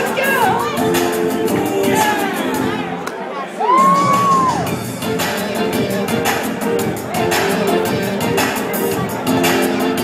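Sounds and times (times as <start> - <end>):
person singing: 0.0 - 2.8, 3.8 - 10.0
karaoke backing track with beat: 0.0 - 3.1, 3.7 - 10.0.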